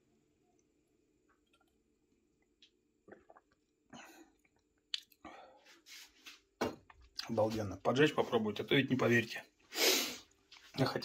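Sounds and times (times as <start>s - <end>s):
man sipping and swallowing: 1.3s - 5.3s.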